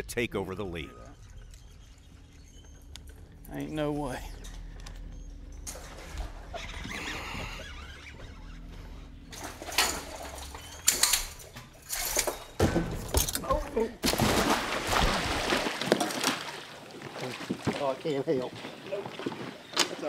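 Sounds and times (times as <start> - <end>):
fish splashing in water: 14.0 - 17.8.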